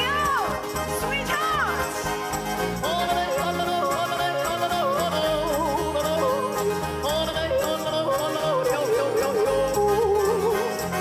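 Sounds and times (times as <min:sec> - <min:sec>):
band with rhythmic bass line: 0:00.0 - 0:11.0
person yodeling: 0:02.9 - 0:11.0.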